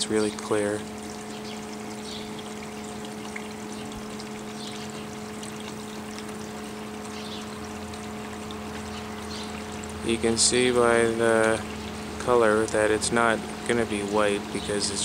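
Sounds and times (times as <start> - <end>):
steady hum: 0.0 - 15.0.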